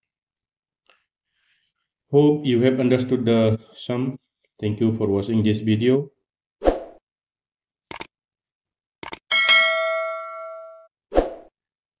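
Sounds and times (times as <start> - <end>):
bell ding: 9.3 - 10.9.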